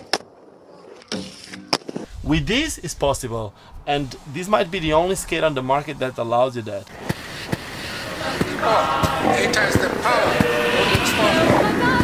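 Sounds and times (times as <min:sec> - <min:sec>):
roller skate wheels rolling: 0:06.9 - 0:12.0.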